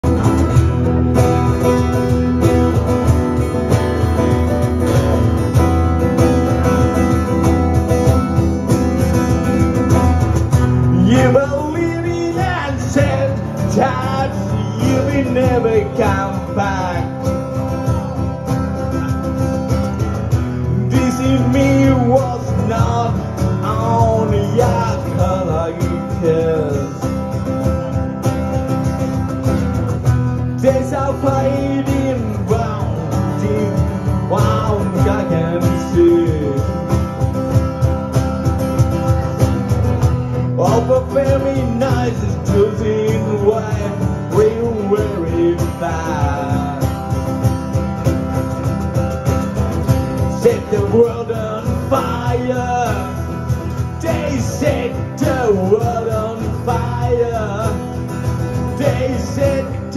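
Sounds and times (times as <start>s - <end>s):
acoustic guitars strumming: 0.0s - 59.9s
cajon beat: 0.0s - 59.9s.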